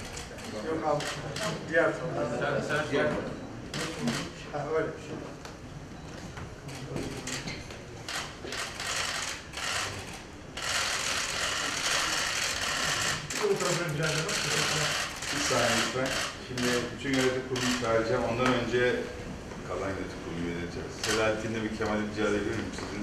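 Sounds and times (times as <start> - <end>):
camera shutters clicking: 0.0 - 1.6, 3.7 - 4.3, 6.7 - 13.5, 14.1 - 18.0.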